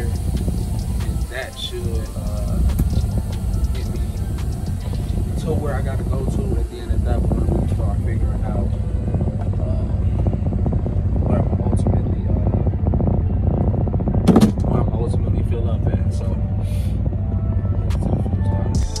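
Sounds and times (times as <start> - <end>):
man talking: 0.0 - 10.1, 11.2 - 12.6, 14.6 - 16.9
music: 0.0 - 19.0
truck engine and road rumble: 0.0 - 19.0.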